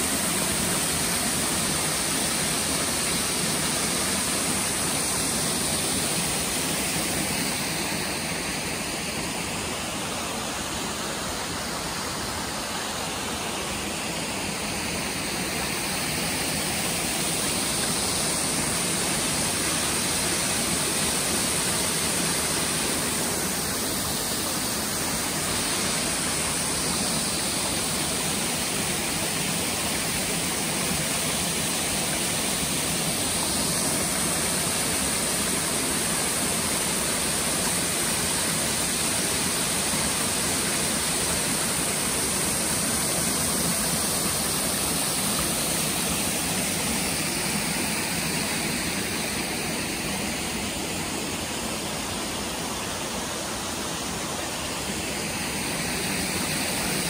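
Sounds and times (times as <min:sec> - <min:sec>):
waterfall rushing water: 0:00.0 - 0:57.0.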